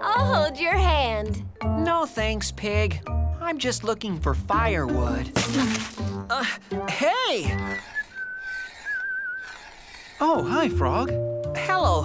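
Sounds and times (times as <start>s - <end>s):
person whistling: 7.5s - 9.8s.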